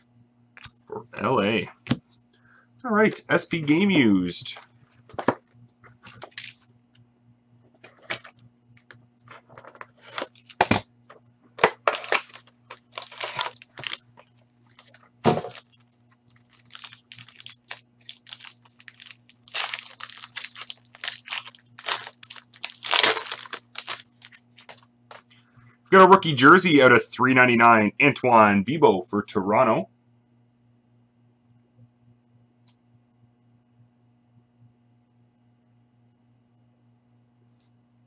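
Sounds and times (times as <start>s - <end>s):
plastic wrap crinkling: 6.1s - 6.6s, 9.9s - 10.8s, 11.6s - 25.2s.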